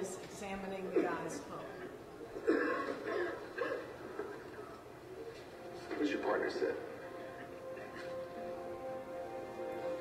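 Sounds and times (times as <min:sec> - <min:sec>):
faint voices in a room: 0:00.0 - 0:10.0.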